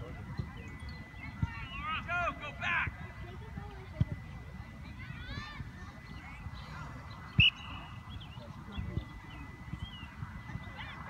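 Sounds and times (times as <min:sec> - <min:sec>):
distant voices shouting: 0:00.8 - 0:03.5.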